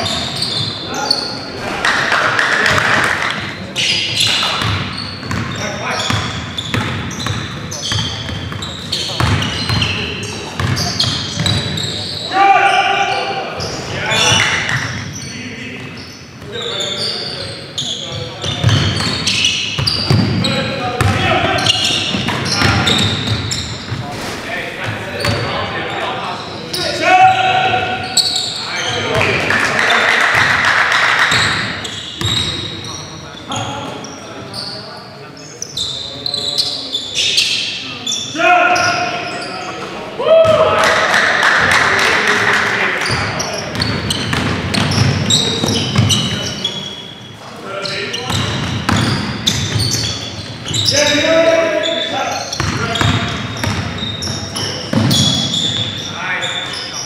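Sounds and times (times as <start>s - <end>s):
basketball bouncing on wooden floor: 4.6s - 5.5s, 6.1s - 8.6s, 9.2s - 9.9s, 10.6s - 10.8s, 43.7s - 46.4s, 52.6s - 54.1s, 54.9s - 55.8s
players shouting: 12.1s - 14.6s, 40.0s - 43.2s.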